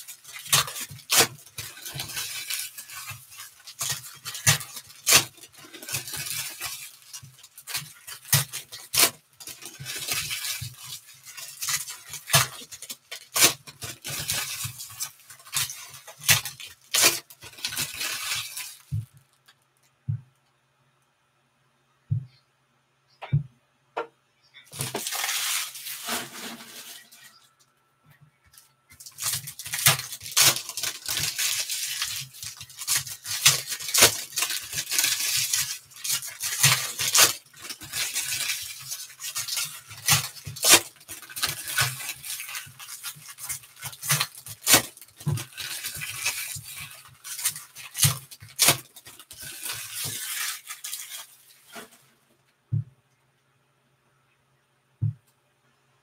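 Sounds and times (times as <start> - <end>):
foil packs tearing open: 0.0 - 19.0, 24.7 - 27.4, 29.0 - 52.0
foil wrappers crinkling: 0.0 - 19.8, 24.7 - 27.6, 28.5 - 52.2.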